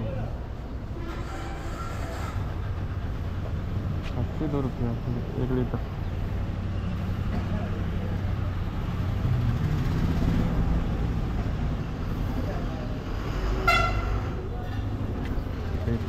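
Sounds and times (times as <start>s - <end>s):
vehicle horn toot: 13.6s - 14.2s.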